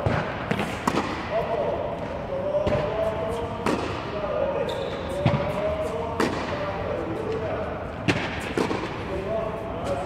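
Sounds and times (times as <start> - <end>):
balls bouncing on hard court: 0.0 - 1.4, 2.0 - 4.2, 5.1 - 9.0
racket striking tennis balls: 0.0 - 4.2, 5.1 - 7.4, 8.0 - 9.1.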